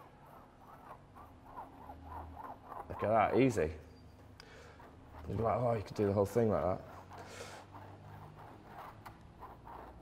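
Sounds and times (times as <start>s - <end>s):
brush handle squeaking on canvas: 0.0s - 10.0s.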